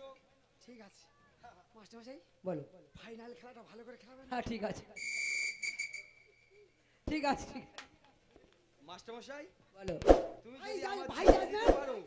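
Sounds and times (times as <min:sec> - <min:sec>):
whistle blown: 0:05.0 - 0:06.6.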